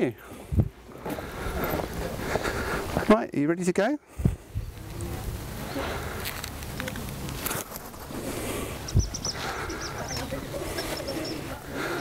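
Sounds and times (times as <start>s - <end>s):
wind on microphone: 0.5s - 0.8s, 4.2s - 6.3s, 8.0s - 11.4s.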